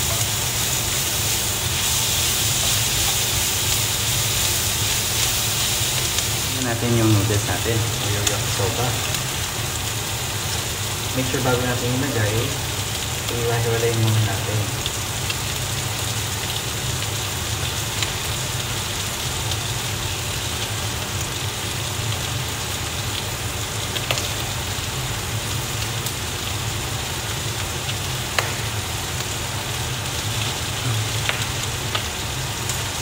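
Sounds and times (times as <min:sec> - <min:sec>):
food sizzling in a frying pan: 0:00.0 - 0:33.0.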